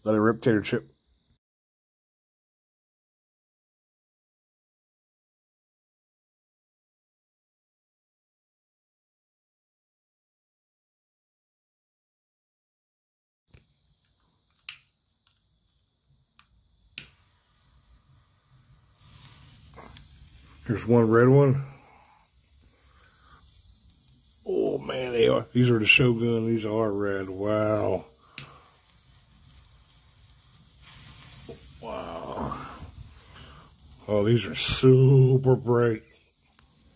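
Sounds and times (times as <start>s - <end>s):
sharp clicks: 13.5s - 15.4s, 16.4s - 17.2s
sparklers fizzing: 13.5s - 36.9s.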